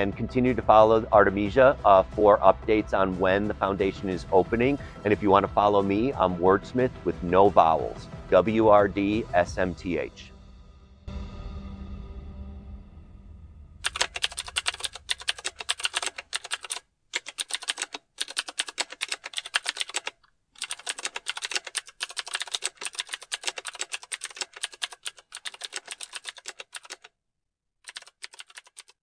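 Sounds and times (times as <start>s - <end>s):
typewriter keys clicking: 13.8s - 27.1s, 27.9s - 29.0s.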